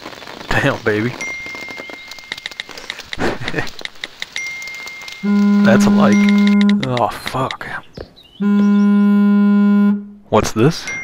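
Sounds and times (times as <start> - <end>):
buzzy electronic tone: 5.2 - 6.9, 8.4 - 10.2.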